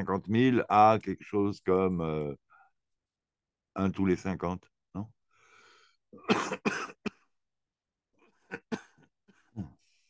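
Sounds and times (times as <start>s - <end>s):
man coughing: 6.2s - 7.3s, 8.4s - 9.0s
short throat sounds: 9.4s - 9.8s.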